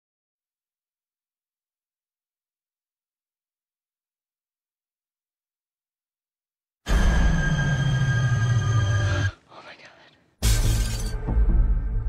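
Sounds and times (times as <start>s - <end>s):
ominous low music drone: 6.9s - 9.3s
glass shattering: 10.4s - 11.2s.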